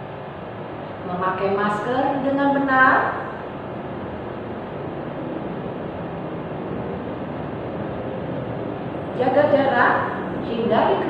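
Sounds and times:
background hiss and rumble: 0.0s - 11.0s.

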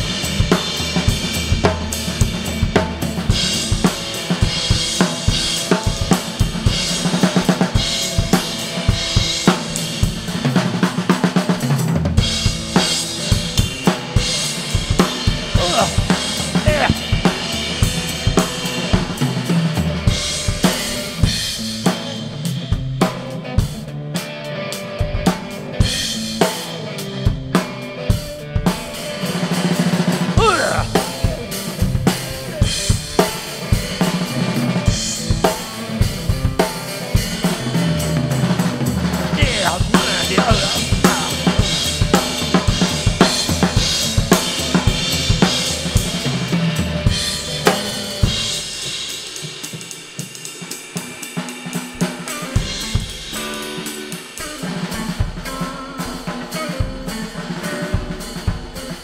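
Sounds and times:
drum kit beat: 0.0s - 23.9s, 25.0s - 59.0s
electric guitar playing: 23.2s - 48.6s.

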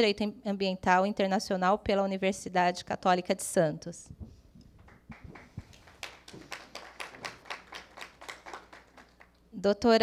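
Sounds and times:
small audience applause: 4.8s - 9.4s.

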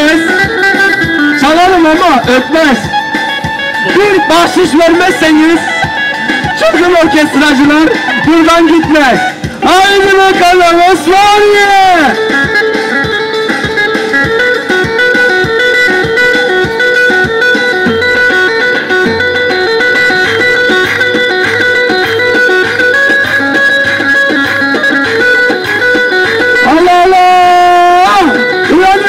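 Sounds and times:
drum beat: 0.0s - 29.0s
electronic keyboard dance tune: 0.0s - 29.0s
pulsing bass line: 0.0s - 29.0s.

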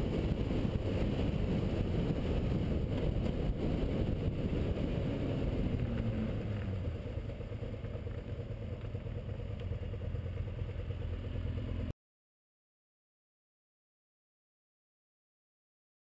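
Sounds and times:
wind rushing over camera: 0.0s - 6.8s
motorcycle engine running: 0.0s - 11.9s.

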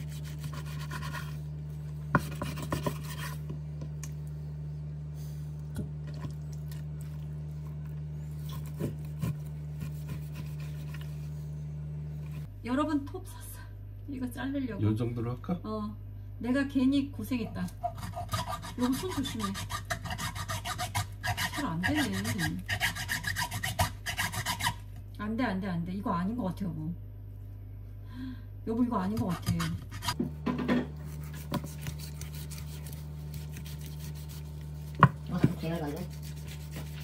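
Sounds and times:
hand saw rasping through bone: 0.0s - 1.4s, 2.2s - 3.4s, 8.4s - 11.3s, 17.8s - 24.8s, 29.1s - 30.2s, 31.0s - 37.0s
knife scraping meat on cutting board: 0.0s - 1.4s, 2.2s - 3.5s, 8.4s - 11.3s, 17.8s - 24.8s, 29.1s - 30.2s, 31.0s - 37.0s.

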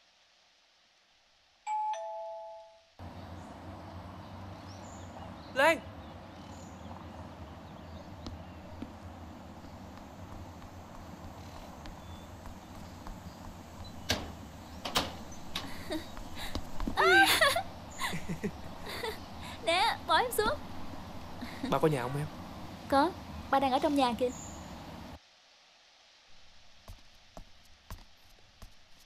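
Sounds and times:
two-tone doorbell chime: 1.7s - 2.9s
steady low hum: 3.0s - 25.2s
sharp knocks: 14.0s - 15.8s.

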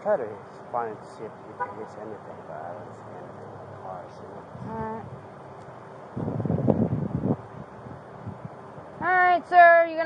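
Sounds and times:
outdoor background noise: 0.0s - 10.0s
wind buffeting microphone: 6.1s - 9.4s.

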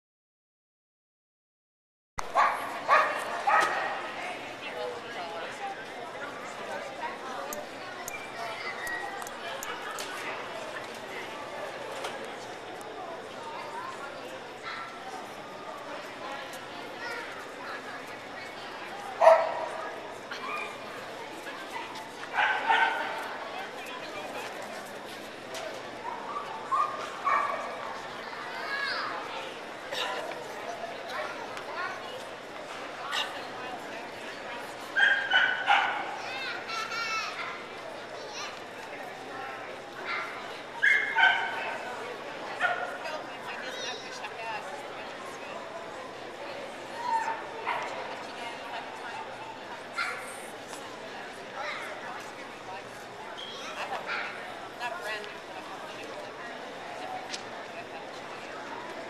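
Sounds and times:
people talking: 2.3s - 59.0s
dog yipping: 40.8s - 41.6s.

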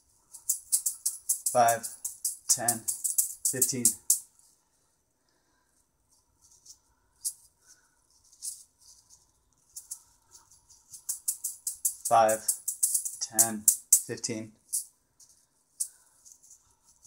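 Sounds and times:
chainmail juggling balls jingling: 0.0s - 4.3s, 8.2s - 17.0s.

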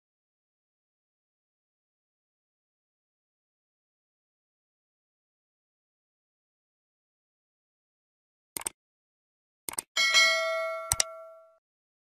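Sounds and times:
double mouse click: 8.6s - 8.8s, 9.7s - 9.9s, 10.9s - 11.1s
bright bell-like ding: 10.0s - 11.6s.

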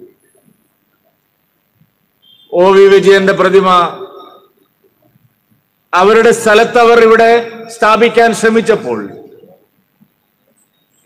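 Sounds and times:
man speaking over loudspeaker: 2.5s - 4.5s, 6.0s - 9.4s.

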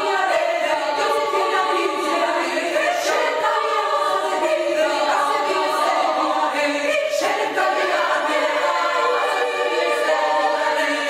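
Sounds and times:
women's choir singing a cappella: 0.0s - 11.0s.

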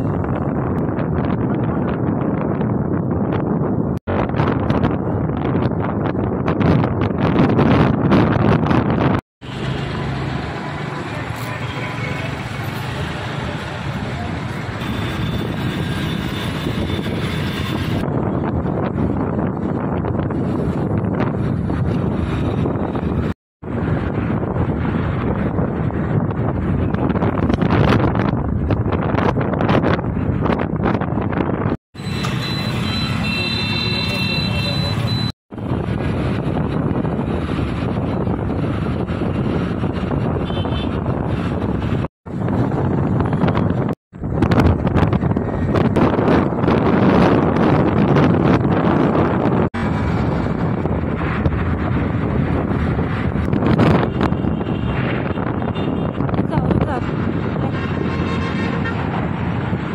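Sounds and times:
road and traffic noise: 0.0s - 59.9s
wind rushing over microphone: 0.0s - 59.9s.

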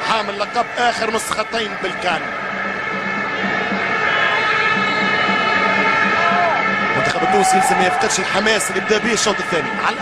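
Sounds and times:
stadium crowd noise: 0.0s - 10.0s
droning horns in stadium: 0.2s - 9.8s.

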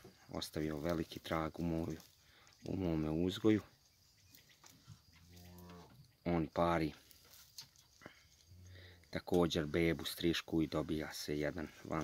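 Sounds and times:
faint low cow moo: 4.9s - 6.1s.

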